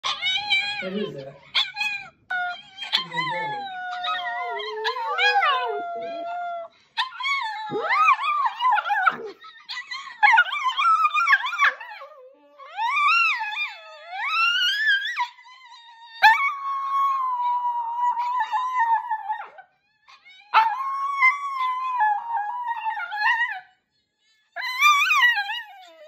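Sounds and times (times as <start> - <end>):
dogs howling: 0.0 - 23.7, 24.5 - 26.0.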